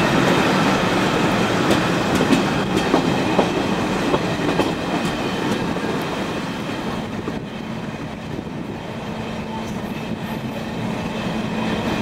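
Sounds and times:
train rolling noise: 0:00.0 - 0:12.0
train wheels clicking over rail joints: 0:01.1 - 0:07.6.

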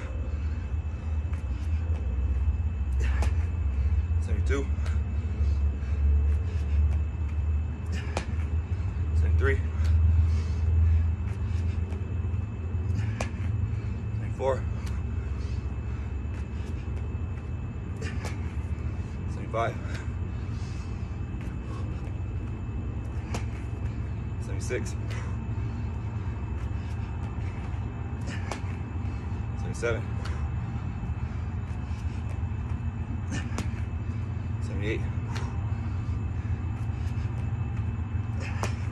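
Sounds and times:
low rumble: 0:00.0 - 0:38.9
man speaking: 0:19.3 - 0:19.9, 0:24.4 - 0:25.1, 0:29.6 - 0:30.1, 0:34.6 - 0:35.2
knocks and taps on exercise mat: 0:38.5 - 0:38.9.

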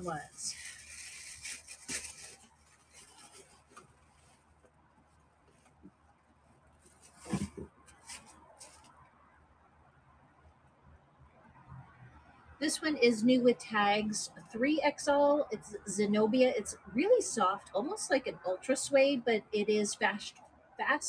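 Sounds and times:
packaging rustling and crinkling: 0:00.0 - 0:09.0
faint handling noises: 0:00.0 - 0:09.2.

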